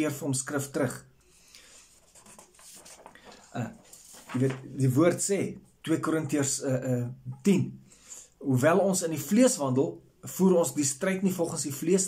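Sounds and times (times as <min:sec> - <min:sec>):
faint rustling: 0:01.7 - 0:04.8.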